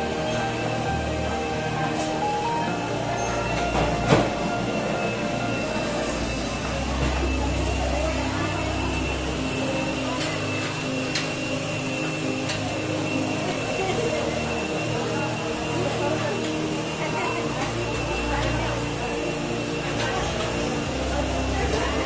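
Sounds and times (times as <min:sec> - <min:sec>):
background chatter of people: 0:00.0 - 0:22.0
steady sustained tones: 0:00.0 - 0:22.0.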